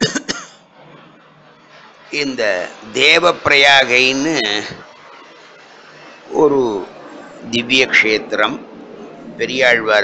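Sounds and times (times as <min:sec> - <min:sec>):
man coughing: 0:00.0 - 0:00.6.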